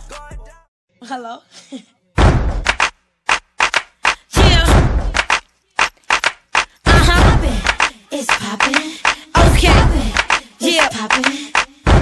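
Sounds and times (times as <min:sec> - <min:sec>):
deep percussive thud: 0:02.2 - 0:02.8, 0:04.4 - 0:05.4, 0:06.9 - 0:07.6
sharp percussive knocks: 0:02.2 - 0:12.0.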